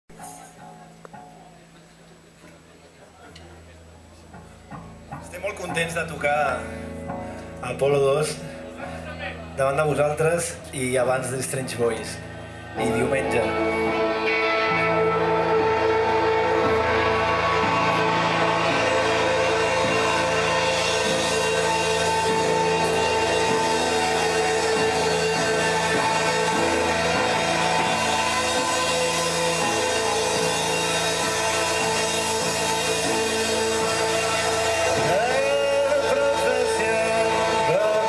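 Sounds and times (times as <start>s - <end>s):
electric guitars: 0.1s - 38.0s
live rock band playing: 3.6s - 38.0s.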